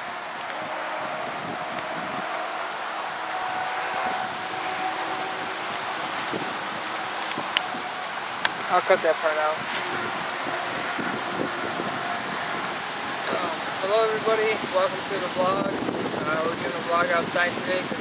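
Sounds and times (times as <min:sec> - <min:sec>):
rustling leaves: 0:00.0 - 0:18.0
wind: 0:00.0 - 0:18.0.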